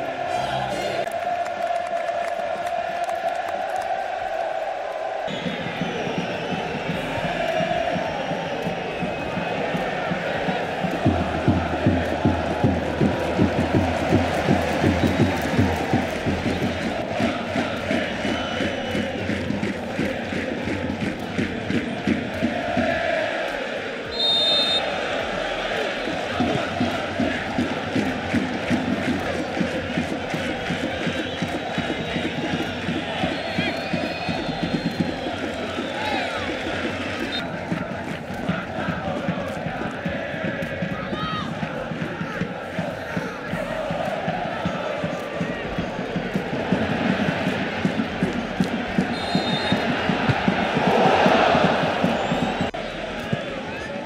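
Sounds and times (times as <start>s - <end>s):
stadium crowd chanting and cheering: 0.0s - 54.0s
steady rhythmic beat: 5.3s - 54.0s
high whistle blast: 24.1s - 24.8s, 49.1s - 49.8s.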